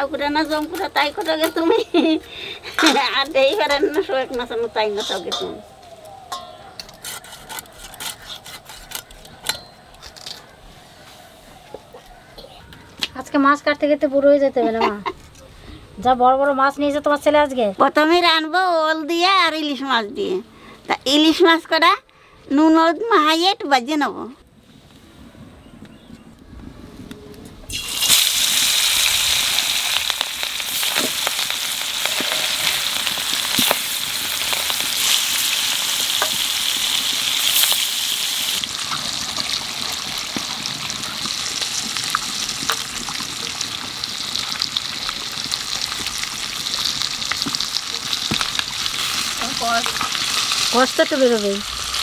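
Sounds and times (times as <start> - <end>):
fish frying in hot oil: 27.7 - 52.0.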